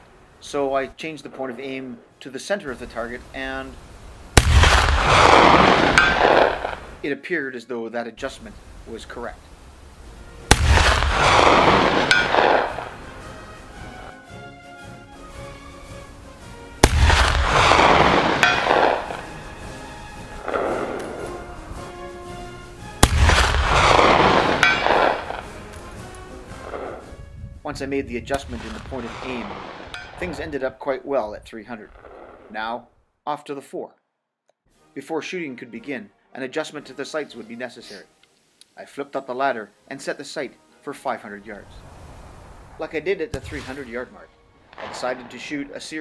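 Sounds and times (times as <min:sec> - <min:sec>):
faint background music: 0:00.0 - 0:03.8, 0:07.0 - 0:29.6, 0:34.7 - 0:46.0
echo rolling off hills: 0:00.0 - 0:07.0, 0:08.2 - 0:14.1, 0:15.2 - 0:27.3, 0:28.3 - 0:33.1, 0:41.5 - 0:46.0
rifle shot: 0:04.4 - 0:07.0, 0:10.5 - 0:13.2, 0:16.8 - 0:19.5, 0:20.3 - 0:21.4, 0:23.0 - 0:25.6, 0:28.3 - 0:30.5, 0:31.9 - 0:32.5, 0:43.3 - 0:44.1, 0:44.7 - 0:45.8
bullet ringing steel gong: 0:18.4 - 0:18.8, 0:24.6 - 0:25.0.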